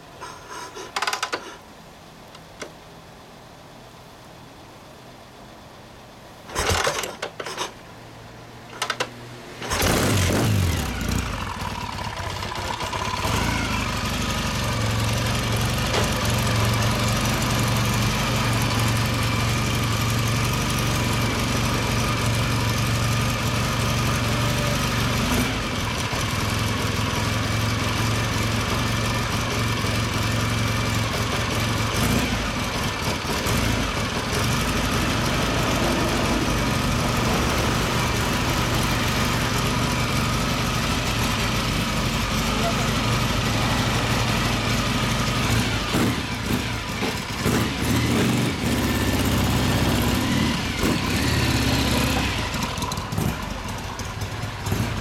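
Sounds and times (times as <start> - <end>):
motorcycle engine idling: 9.6 - 55.0.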